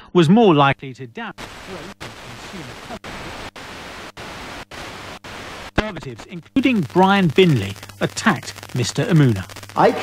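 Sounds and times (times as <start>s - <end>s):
radio static hiss: 0.5s - 10.0s.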